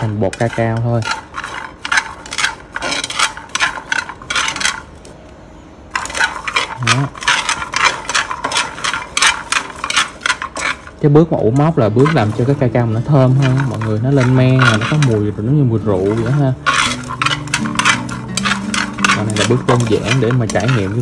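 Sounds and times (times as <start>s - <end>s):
beans rattling in a frying pan: 0.0s - 5.1s, 5.9s - 21.0s.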